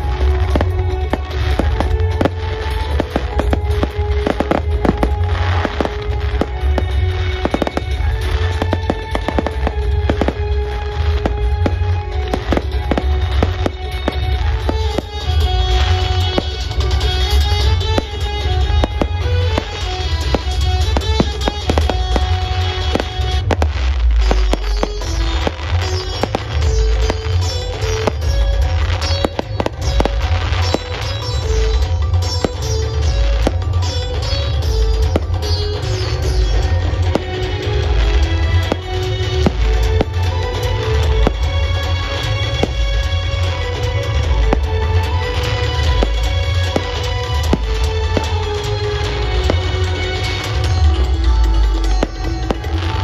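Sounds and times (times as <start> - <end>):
fireworks bangs and crackles: 0.0 - 53.0
music playing: 0.0 - 53.0.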